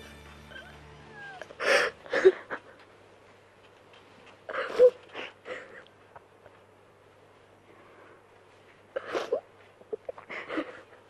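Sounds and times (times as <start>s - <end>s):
woman crying and sobbing: 0.5s - 2.8s, 9.0s - 11.0s.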